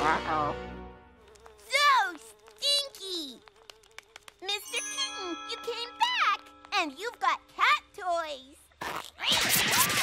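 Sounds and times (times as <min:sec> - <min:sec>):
thin wavering buzz: 0:00.0 - 0:07.9.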